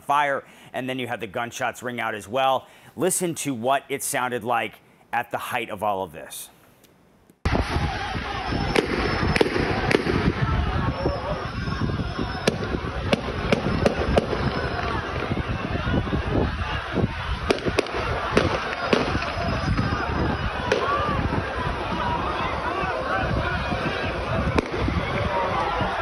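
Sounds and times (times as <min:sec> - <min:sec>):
crowd shouting: 0:07.5 - 0:26.0
gunshots: 0:08.6 - 0:10.5, 0:12.5 - 0:15.2, 0:17.4 - 0:19.9, 0:20.6 - 0:21.0, 0:24.6 - 0:25.2.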